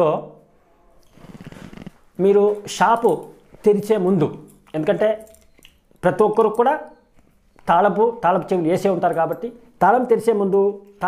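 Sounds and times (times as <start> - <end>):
man speaking: 2.2 - 5.3, 6.0 - 7.0, 7.7 - 11.0.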